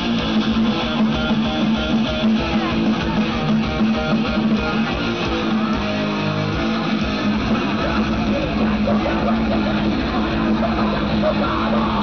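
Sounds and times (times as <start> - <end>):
crowd shouting: 0.0 - 12.0
live heavy metal band: 0.0 - 12.0.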